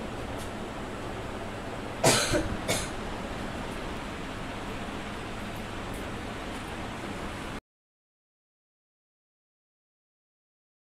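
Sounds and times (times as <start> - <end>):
steady background hiss: 0.0 - 7.6
short coughs: 2.0 - 3.0.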